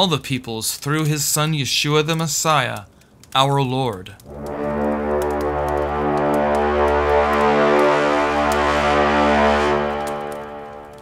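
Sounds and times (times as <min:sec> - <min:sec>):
low musical drone: 0:04.3 - 0:11.0.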